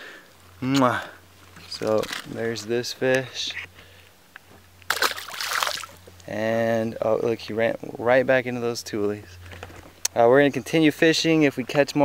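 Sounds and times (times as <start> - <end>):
fish splashing into water: 4.9 - 6.0.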